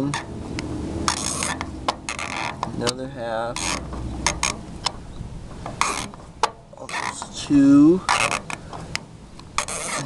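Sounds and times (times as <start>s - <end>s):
screwdriver scraping on screw: 1.1s - 4.6s, 5.8s - 6.2s, 8.1s - 8.6s, 9.5s - 10.0s.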